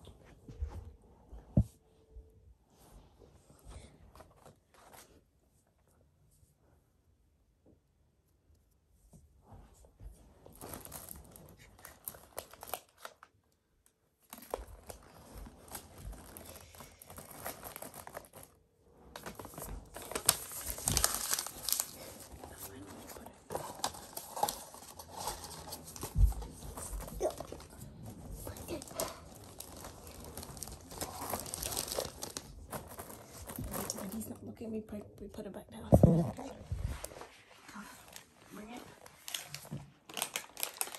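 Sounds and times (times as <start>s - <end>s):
plastic package crinkling: 10.6s - 13.3s, 14.3s - 18.6s, 19.2s - 26.2s, 28.5s - 34.3s, 39.0s - 40.9s.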